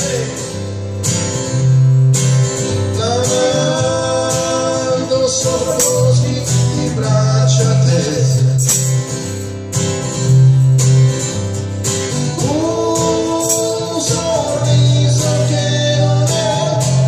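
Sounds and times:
man singing: 0.0 - 0.6, 2.7 - 8.7, 12.4 - 17.0
acoustic guitar strumming: 0.0 - 17.0.

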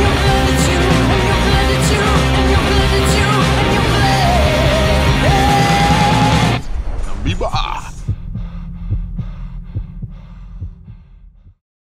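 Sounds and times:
throbbing electronic pulse: 0.0 - 11.6.

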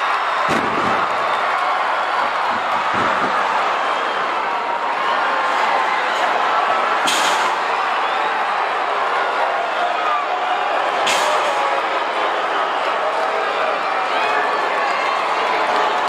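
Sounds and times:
crowd shouting and yelling: 0.0 - 16.0
sharp impact bangs: 0.4 - 1.4.

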